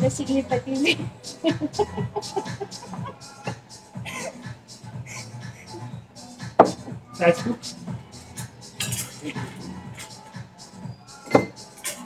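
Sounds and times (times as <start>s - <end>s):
quiet background music: 0.0s - 12.0s
glass bottle knocking on table: 6.6s - 6.9s, 11.3s - 11.6s.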